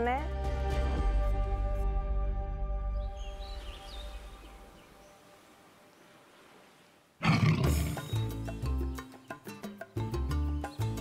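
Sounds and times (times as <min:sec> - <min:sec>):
big cat roar: 0:07.2 - 0:08.2.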